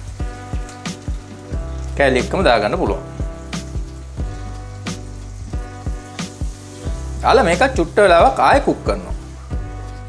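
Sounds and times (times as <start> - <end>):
background music with low notes: 0.0 - 10.0
oil sizzling in a frying pan: 0.0 - 10.0.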